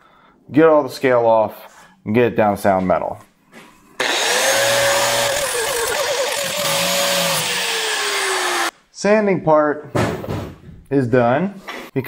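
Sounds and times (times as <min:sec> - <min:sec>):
angle grinder grinding metal: 0:04.0 - 0:08.7.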